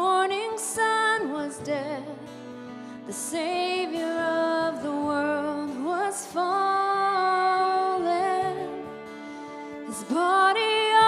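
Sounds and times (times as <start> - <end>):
woman singing worship song: 0.0 - 2.4, 3.0 - 9.0, 9.7 - 11.0.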